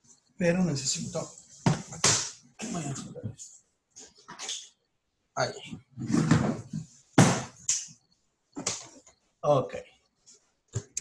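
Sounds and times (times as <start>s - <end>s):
voices through video call: 0.2s - 11.0s
household noise: 0.9s - 4.7s.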